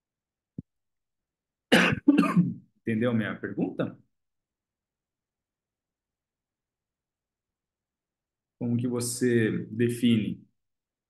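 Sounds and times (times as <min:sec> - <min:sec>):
man coughing: 0:01.7 - 0:02.6
man speaking: 0:02.9 - 0:04.0, 0:08.6 - 0:10.4.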